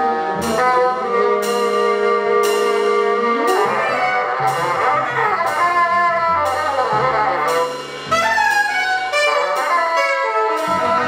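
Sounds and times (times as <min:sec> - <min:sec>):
alto saxophone: 0:00.0 - 0:11.0
bassoon: 0:00.0 - 0:11.0
double bass: 0:00.0 - 0:11.0
drums: 0:00.0 - 0:11.0.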